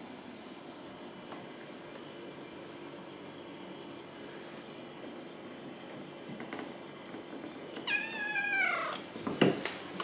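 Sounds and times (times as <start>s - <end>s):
kitten meowing: 7.8s - 9.0s.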